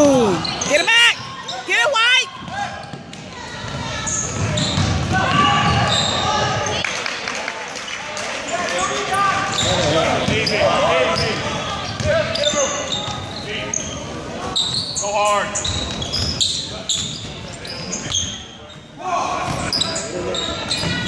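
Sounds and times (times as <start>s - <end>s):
people calling out and shouting: 0.0s - 6.7s
basketball bouncing on hardwood: 2.4s - 5.8s.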